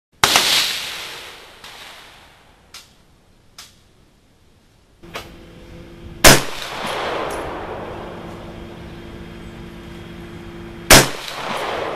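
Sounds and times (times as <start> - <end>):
gunshot with echo: 10.9 - 11.9.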